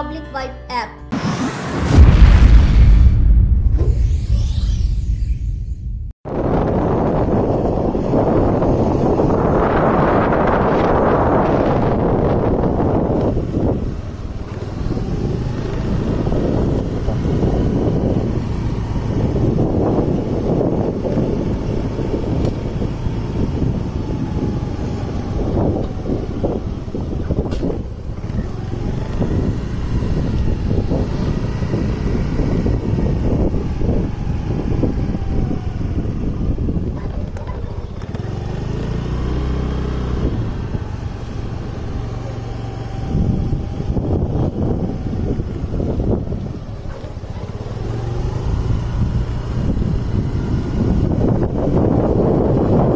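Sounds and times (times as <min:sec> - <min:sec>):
vehicle running: 0:01.1 - 0:52.9
wind rumbling on microphone: 0:01.5 - 0:52.9.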